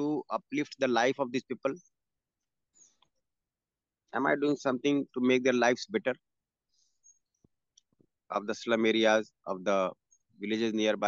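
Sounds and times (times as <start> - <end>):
man speaking: 0.0 - 1.8, 4.1 - 6.2, 8.3 - 11.0
very faint clicks: 7.0 - 8.1.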